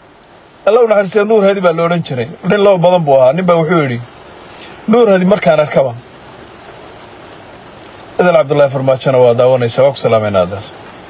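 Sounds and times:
steady background noise: 0.0 - 11.0.

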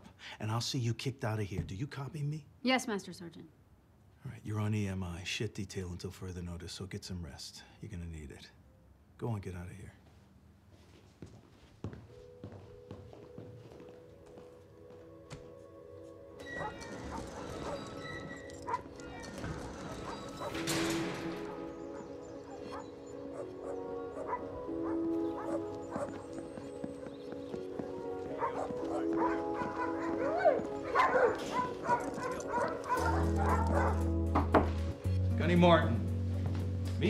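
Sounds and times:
dogs barking: 16.4 - 34.5.

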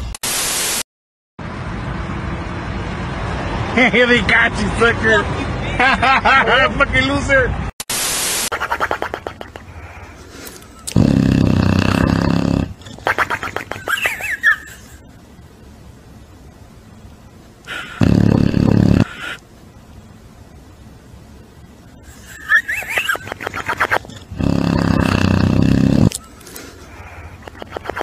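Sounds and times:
dog snoring: 10.9 - 12.8, 17.7 - 19.4, 24.3 - 26.2.

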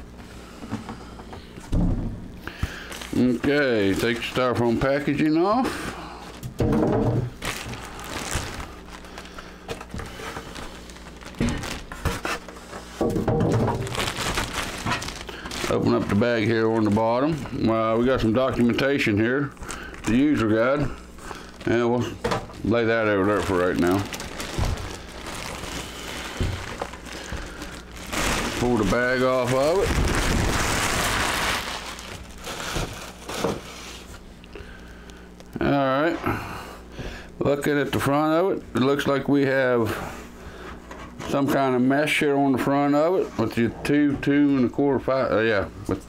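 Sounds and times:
plastic bag crinkling: 2.7 - 5.3, 7.3 - 35.6
styrofoam packing pulled away: 7.4 - 12.4, 13.1 - 16.4, 22.6 - 34.1.

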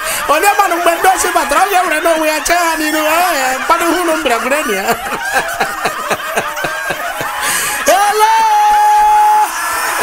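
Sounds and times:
person laughing: 3.6 - 8.5.

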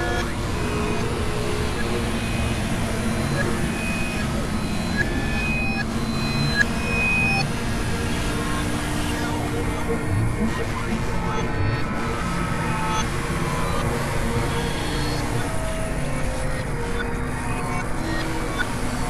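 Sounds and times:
synthesizer noise and drone: 0.0 - 19.0.

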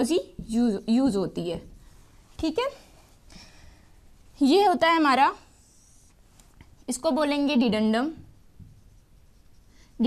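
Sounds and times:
marker pen writing on whiteboard: 8.2 - 10.0.

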